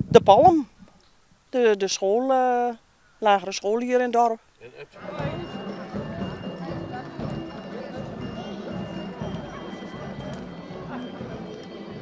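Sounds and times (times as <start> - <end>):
people talking: 0.0 - 0.7, 1.6 - 12.0
cart wheels clattering: 5.0 - 12.0
footsteps on brick paving: 5.0 - 12.0.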